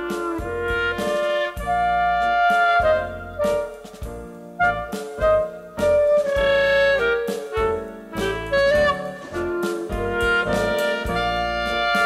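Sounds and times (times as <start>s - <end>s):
orchestra playing klezmer dance tune: 0.0s - 12.0s.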